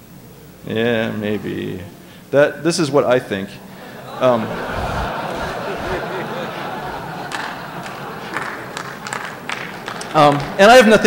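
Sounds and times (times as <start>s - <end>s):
low crowd murmur: 3.7s - 9.8s
scattered clapping: 4.4s - 11.0s.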